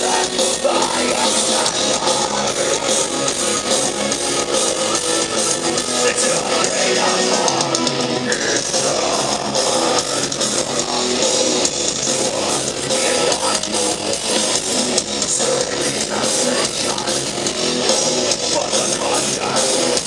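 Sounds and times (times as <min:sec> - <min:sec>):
heavy metal band playing live: 0:00.0 - 0:20.0.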